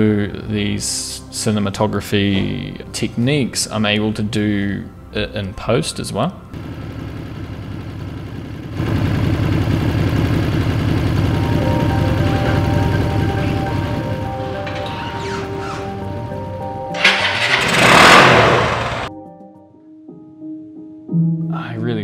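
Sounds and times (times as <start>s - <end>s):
motorcycle engine idling: 6.6s - 19.1s
music tones: 11.2s - 21.5s.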